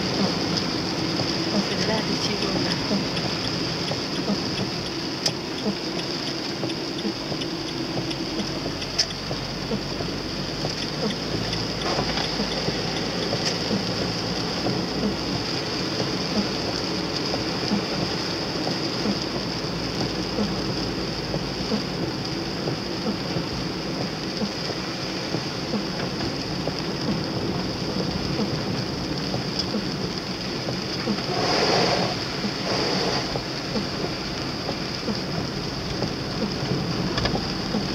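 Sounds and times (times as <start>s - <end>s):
car engine: 0.0s - 37.9s
car passing on wet road: 0.0s - 37.9s
raindrops ticking on car: 0.0s - 37.9s
tyres hissing on wet road: 0.0s - 37.9s.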